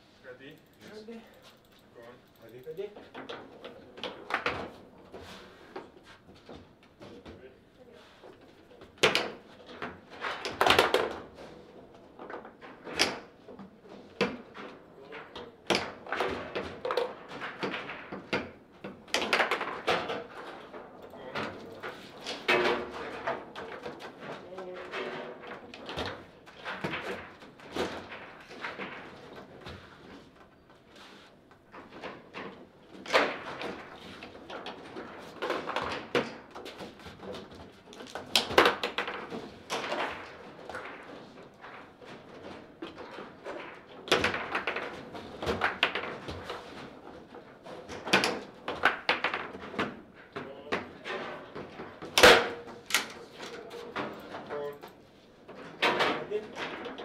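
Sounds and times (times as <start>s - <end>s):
foosball ball clacks: 8.8s - 30.4s, 31.5s - 57.0s.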